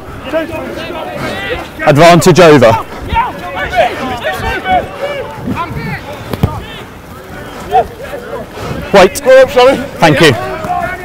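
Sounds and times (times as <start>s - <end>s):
outdoor noise: 0.0s - 11.0s
players shouting: 0.0s - 11.0s.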